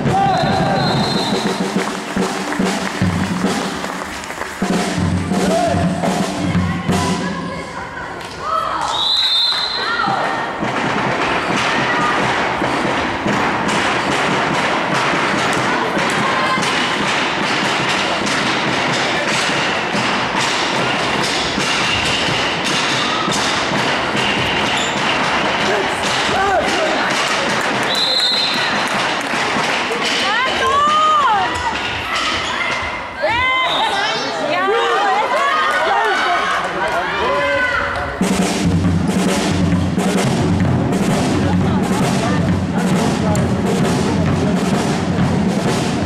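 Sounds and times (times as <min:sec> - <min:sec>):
hubbub of voices: 0:00.0 - 0:46.0
sports shoes squeaking: 0:24.4 - 0:25.2, 0:32.0 - 0:34.3.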